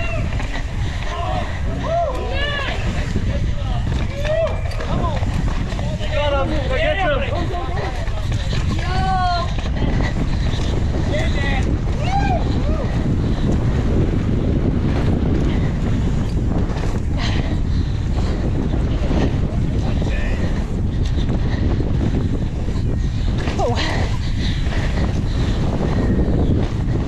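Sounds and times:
low rumble of bike on dirt: 0.0 - 27.0
wind buffeting microphone: 0.0 - 27.0
spectators shouting: 1.0 - 3.1.

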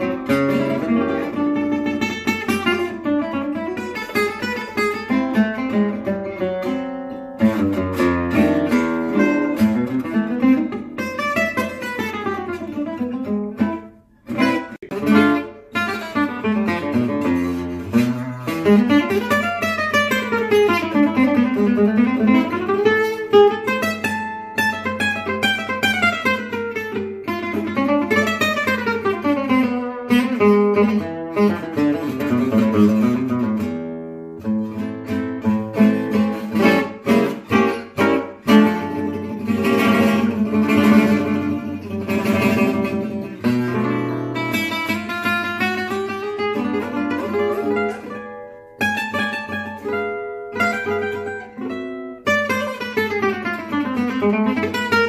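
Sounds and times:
gypsy jazz acoustic guitar: 0.0 - 55.0.

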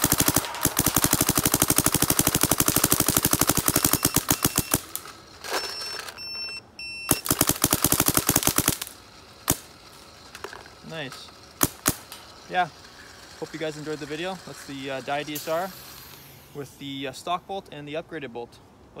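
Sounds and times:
paintball marker firing shots: 0.0 - 5.1, 9.5 - 9.7, 11.6 - 12.3.

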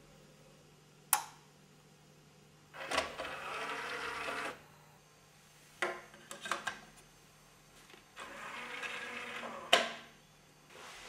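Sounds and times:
disc tray motor whirring: 2.7 - 4.7, 8.1 - 10.2.

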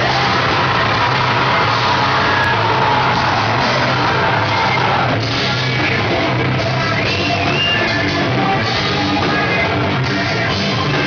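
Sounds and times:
bass guitar: 0.0 - 11.0
distorted electric guitars: 0.0 - 11.0.

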